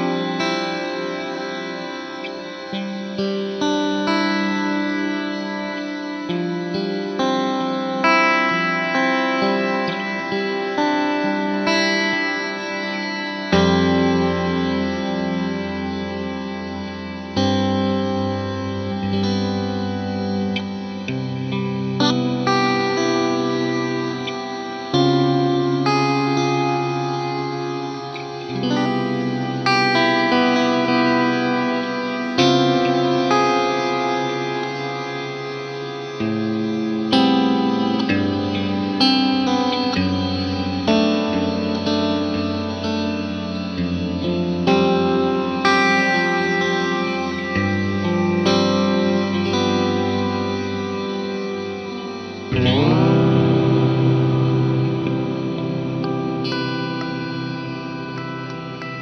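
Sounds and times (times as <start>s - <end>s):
electric guitar chords with reverb: 0.0s - 59.0s.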